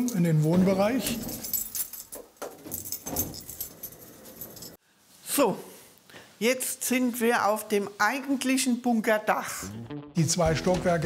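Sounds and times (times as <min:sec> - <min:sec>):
small metal pieces jingling: 0:00.0 - 0:04.8.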